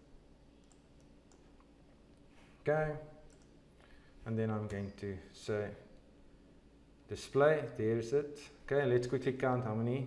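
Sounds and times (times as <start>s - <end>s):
computer mouse clicks: 0.6s - 2.2s, 3.3s - 3.6s.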